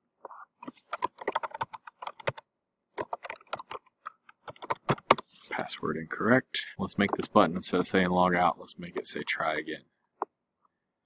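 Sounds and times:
keyboard typing: 0:00.6 - 0:05.3, 0:07.0 - 0:07.4.

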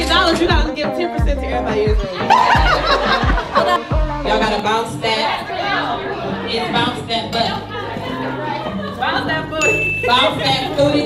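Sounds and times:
music with steady bass beat: 0:00.0 - 0:11.0
crowd laughing: 0:02.0 - 0:04.6, 0:05.2 - 0:09.6.

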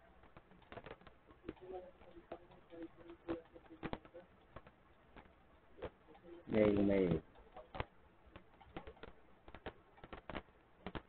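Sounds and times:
faint low tones: 0:00.0 - 0:11.0
computer keys clicking: 0:00.1 - 0:11.0.

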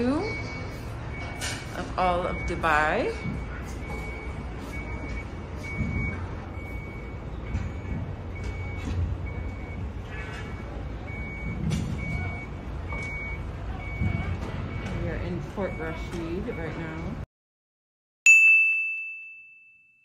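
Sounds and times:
reversing alarm beeping: 0:00.0 - 0:17.2.

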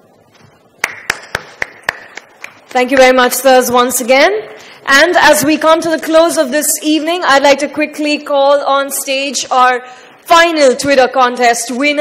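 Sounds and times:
person clapping: 0:00.8 - 0:03.2.

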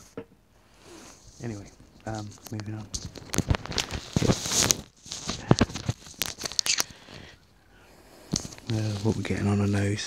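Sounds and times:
microphone handling noise: 0:01.1 - 0:07.4.

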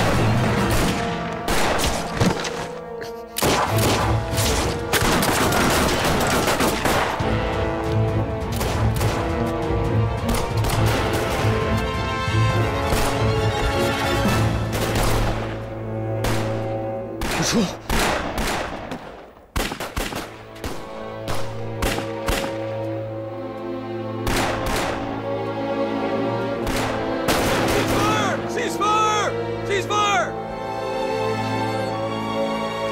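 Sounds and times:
rifle fire from many guns: 0:00.0 - 0:02.1, 0:03.4 - 0:07.3, 0:17.2 - 0:22.6, 0:24.2 - 0:25.1, 0:26.6 - 0:28.0
dramatic orchestral score: 0:00.0 - 0:32.9.

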